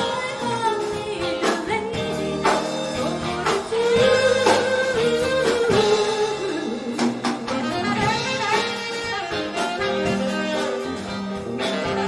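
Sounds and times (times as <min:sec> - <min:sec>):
woman singing: 0:00.0 - 0:08.3
live band playing: 0:00.0 - 0:12.0.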